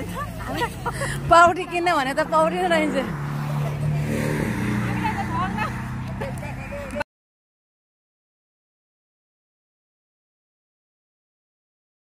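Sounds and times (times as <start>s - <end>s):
voices: 0.0s - 7.0s.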